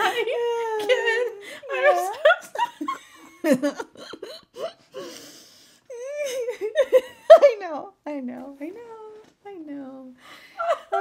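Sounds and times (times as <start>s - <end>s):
woman laughing helplessly: 0.0s - 5.2s, 5.9s - 7.5s, 10.6s - 11.0s.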